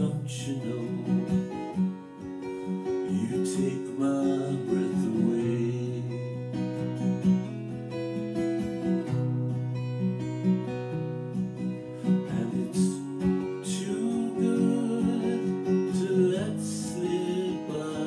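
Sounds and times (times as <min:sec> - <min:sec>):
man singing: 0:00.0 - 0:01.7, 0:03.0 - 0:06.6, 0:12.0 - 0:18.0
acoustic guitar strummed: 0:00.0 - 0:18.0.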